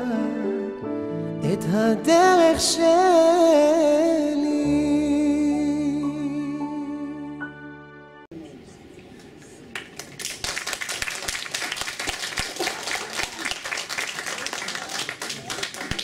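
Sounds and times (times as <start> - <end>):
song playing: 0.0 - 8.3
audience applauding: 9.2 - 16.0.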